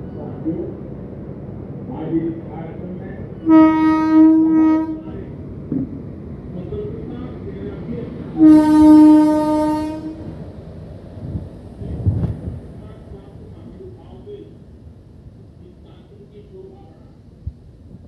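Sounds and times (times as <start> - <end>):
freight train rumbling past: 0.0 - 18.0
locomotive horn blasts: 3.4 - 5.2, 8.4 - 10.3.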